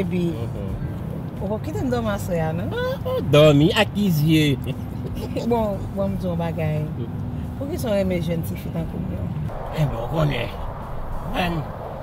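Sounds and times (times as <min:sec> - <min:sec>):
steady low hum: 0:09.2 - 0:12.0.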